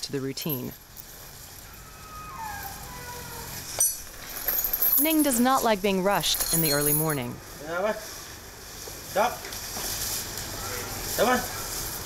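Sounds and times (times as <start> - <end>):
iron chain clinking: 0.0 - 7.4.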